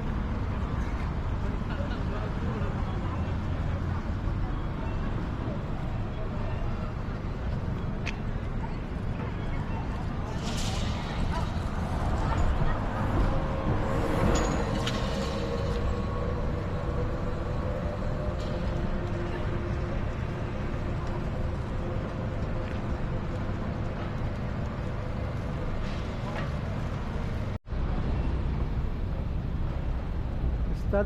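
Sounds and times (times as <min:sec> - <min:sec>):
rumble of passing vehicles: 0:00.0 - 0:31.0.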